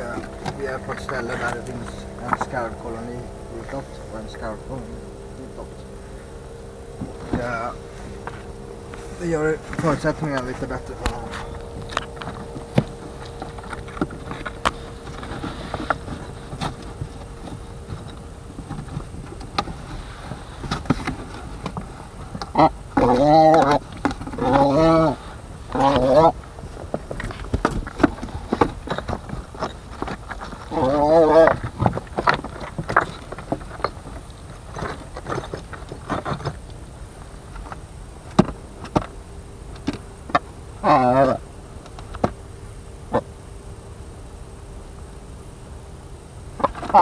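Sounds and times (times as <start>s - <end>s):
footsteps on stone rubble: 0.0s - 25.1s
wavering voiced call: 0.0s - 36.0s, 40.7s - 41.6s
steady low rumble: 0.0s - 42.6s.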